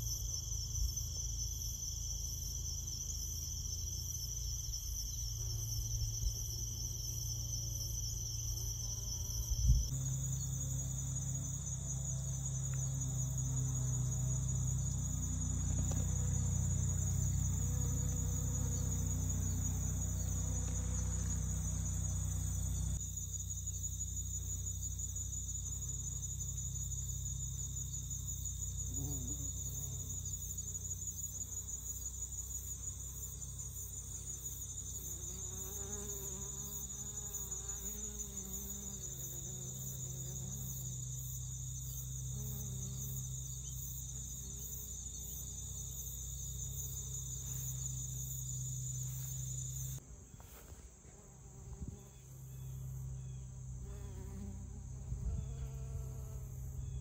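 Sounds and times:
crickets trilling: 0:00.0 - 0:57.0
bees buzzing: 0:08.0 - 0:23.4, 0:34.4 - 0:41.6.

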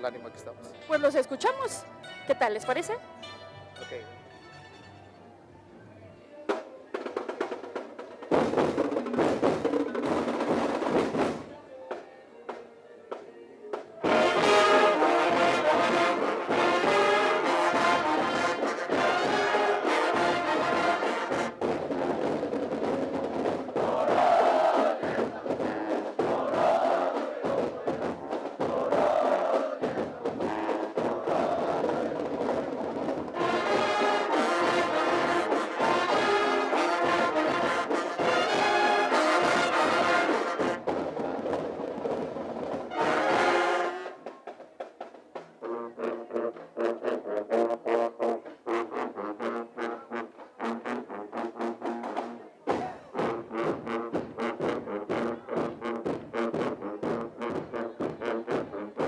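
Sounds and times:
marching band playing: 0:00.0 - 0:05.2, 0:06.5 - 0:59.0.

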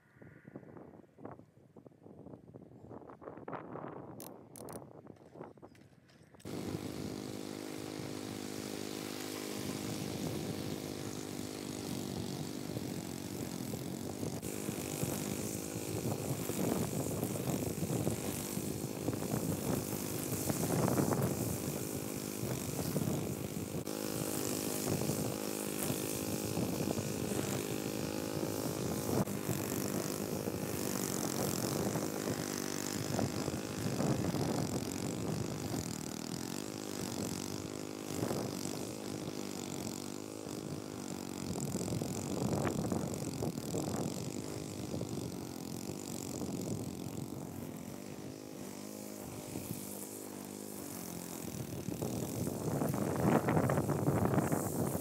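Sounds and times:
lawn mower engine cutting grass: 0:04.1 - 0:55.0.

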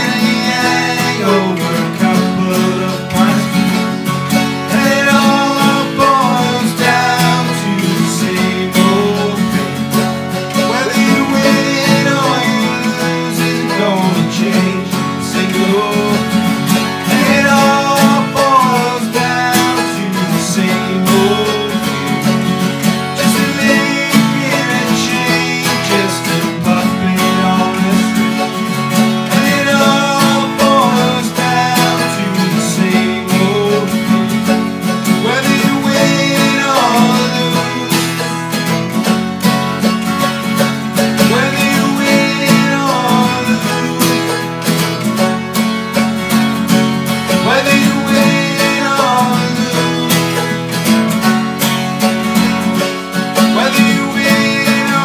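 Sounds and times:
acoustic guitars playing chords: 0:00.0 - 0:55.0
mandolin: 0:00.0 - 0:55.0.

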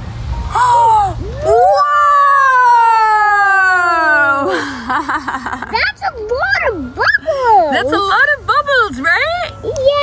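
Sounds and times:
child exclaiming whoa: 0:01.4 - 0:04.1.

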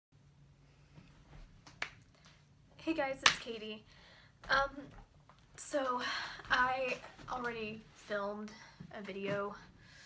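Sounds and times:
low room hum: 0:00.2 - 0:10.0.

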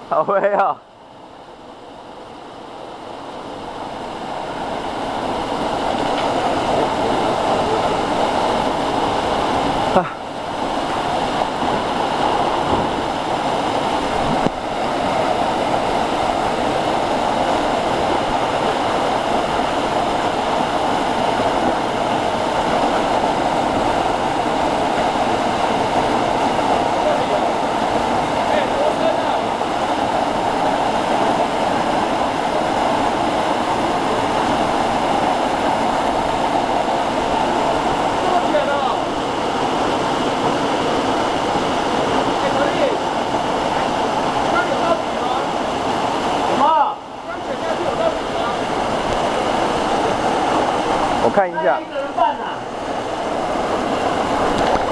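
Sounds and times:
waterfall rushing: 0:00.0 - 0:54.9.

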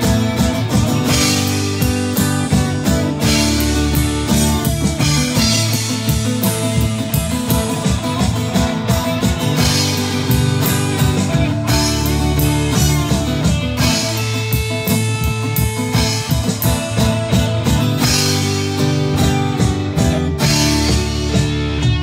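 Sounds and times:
drum kit beat: 0:00.0 - 0:22.0
electric bass: 0:00.0 - 0:22.0
electric guitar: 0:00.0 - 0:22.0
strummed acoustic guitar: 0:00.0 - 0:22.0.

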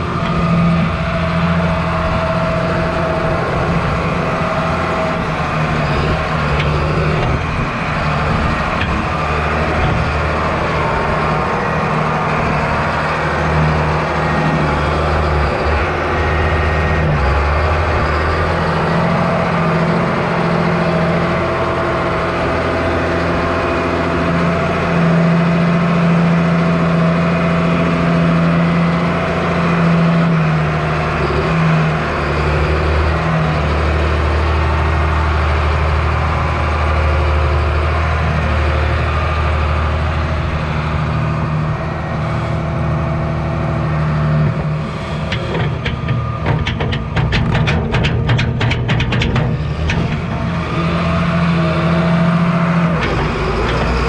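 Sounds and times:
tractor engine running: 0:00.0 - 0:54.0
rapid rattle of clicks: 0:45.2 - 0:50.7.

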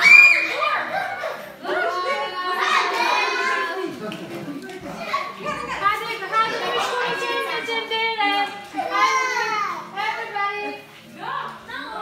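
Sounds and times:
children playing and chattering: 0:00.0 - 0:12.0.

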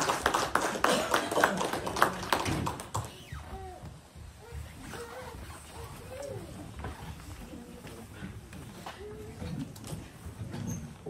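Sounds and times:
people clapping: 0:00.0 - 0:03.3.

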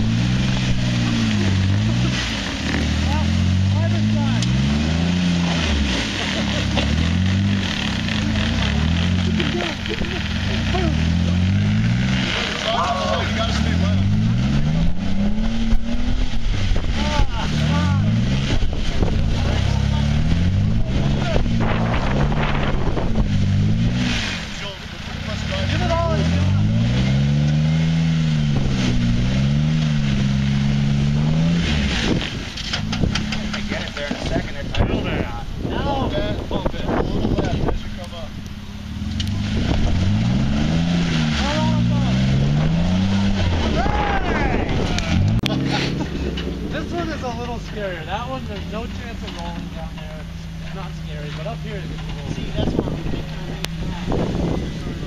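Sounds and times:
engine revving up and down: 0:00.0 - 0:55.0.

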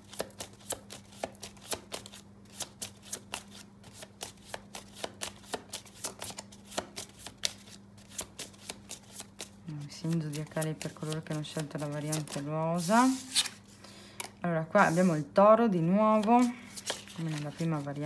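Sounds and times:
cards being shuffled: 0:00.0 - 0:13.8, 0:16.0 - 0:18.0
faint steady hum: 0:00.0 - 0:18.0.

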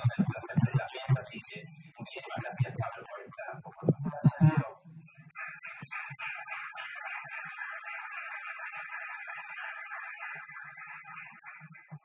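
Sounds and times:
man's amplified voice: 0:00.0 - 0:04.8.

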